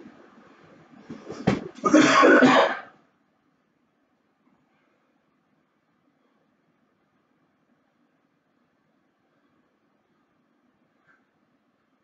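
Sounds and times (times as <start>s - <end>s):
person clearing throat: 1.8s - 3.0s.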